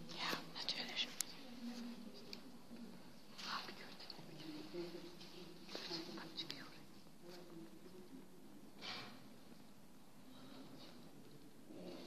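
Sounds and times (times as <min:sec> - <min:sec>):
faint whispering voices: 0:00.0 - 0:12.0.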